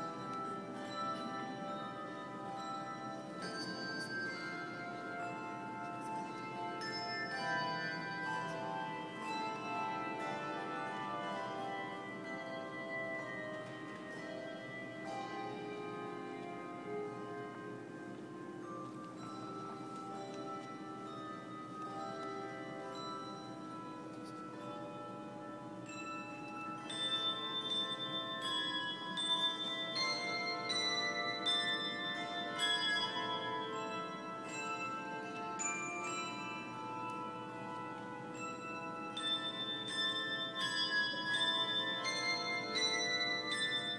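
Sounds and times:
handbell choir playing: 0.0 - 43.9.

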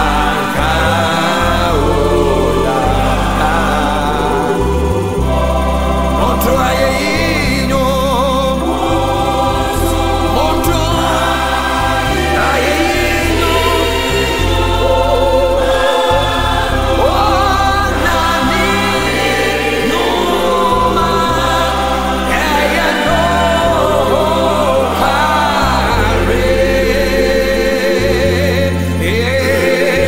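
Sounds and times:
bass line: 0.0 - 30.0
choir singing: 0.0 - 30.0.

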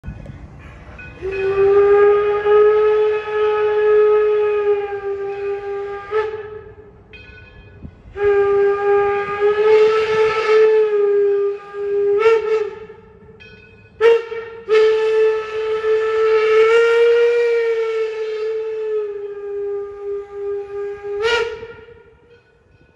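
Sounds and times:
steam locomotive whistle blasts: 1.1 - 7.0, 8.1 - 22.9.

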